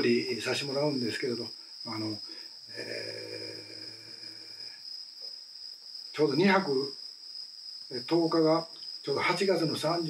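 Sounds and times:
crickets trilling: 0.0s - 10.0s
man's hesitant ehh: 2.7s - 4.6s.

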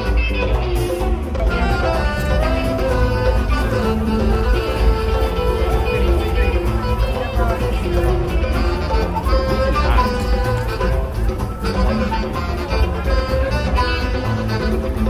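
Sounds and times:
plucked string music: 0.0s - 15.0s.

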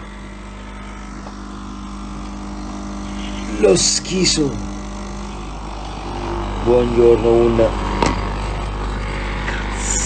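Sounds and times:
coffee machine pump humming: 0.0s - 10.0s.

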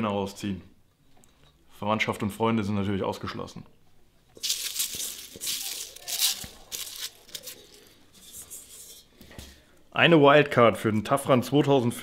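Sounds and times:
paper slips rustling: 4.4s - 8.7s.

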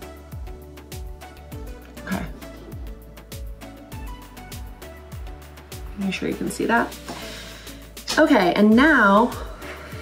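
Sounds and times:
kick drum and hi-hat beat: 0.0s - 10.0s.

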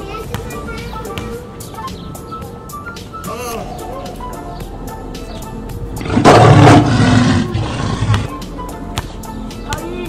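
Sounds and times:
deep rough roar: 6.0s - 8.3s.

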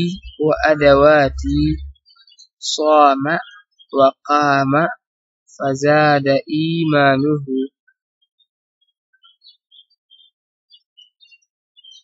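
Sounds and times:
faint bird chirps: 9.2s - 12.0s.

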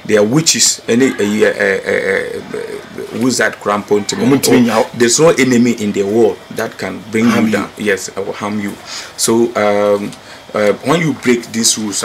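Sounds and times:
man speaking: 0.0s - 12.0s
man's drawn-out hesitation sound: 0.0s - 12.0s.

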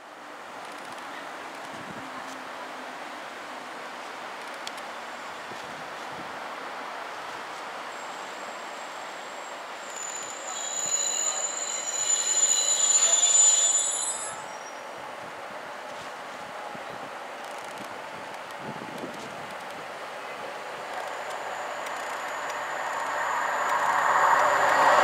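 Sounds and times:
train wheels squealing on track: 7.9s - 15.0s, 20.7s - 25.0s.

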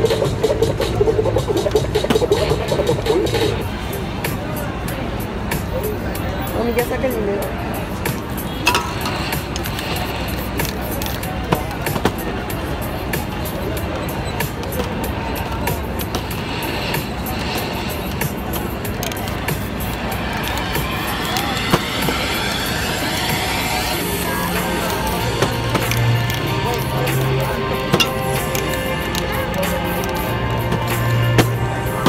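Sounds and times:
music playing: 0.0s - 32.0s
sharp clicks: 16.0s - 32.0s.

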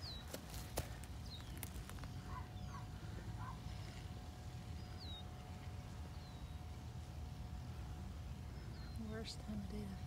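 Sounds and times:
bird chirping: 0.0s - 6.9s, 8.5s - 10.0s.

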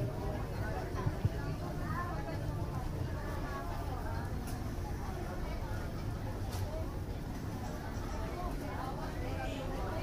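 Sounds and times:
faint indistinct speech: 0.0s - 10.0s.

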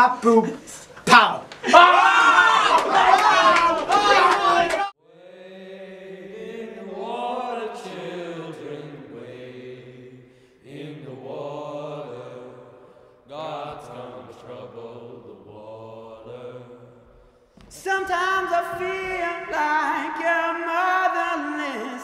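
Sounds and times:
boys singing in close harmony: 2.6s - 22.0s.

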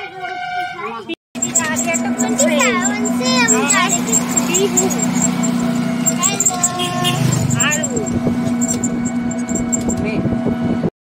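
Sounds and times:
vehicle running hum: 1.4s - 10.9s.

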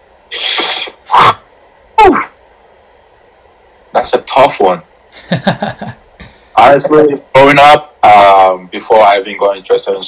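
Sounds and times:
man sneezing: 0.4s - 1.4s.

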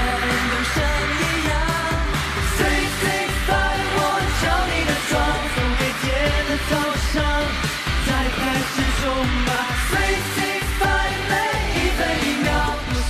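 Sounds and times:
backing track with steady beat: 0.0s - 13.0s
young men singing pop song: 0.0s - 13.0s.

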